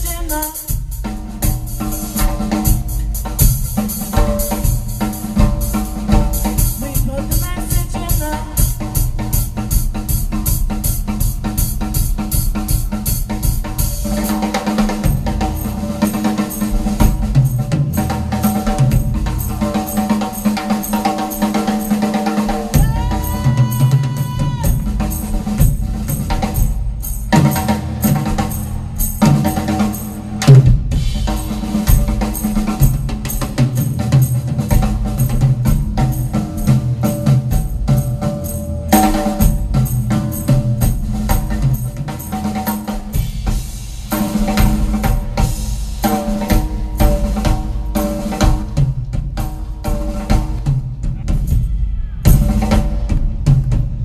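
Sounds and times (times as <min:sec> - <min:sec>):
drum kit solo: 0:00.0 - 0:54.0
pitched accompanying music: 0:00.0 - 0:54.0
held pitched tone: 0:22.5 - 0:25.6.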